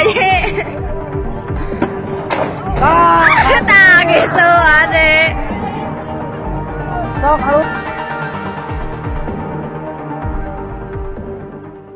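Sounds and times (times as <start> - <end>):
background music held note: 5.4 - 9.9.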